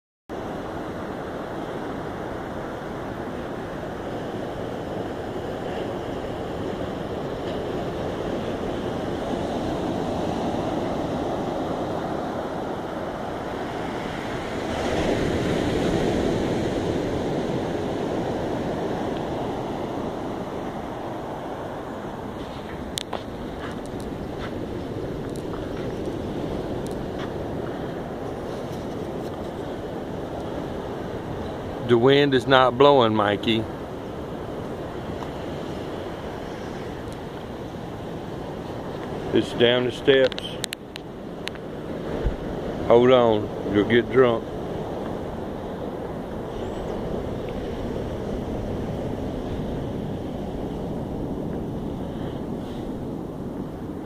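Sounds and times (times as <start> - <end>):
ocean surf breaking: 0.3 - 54.0.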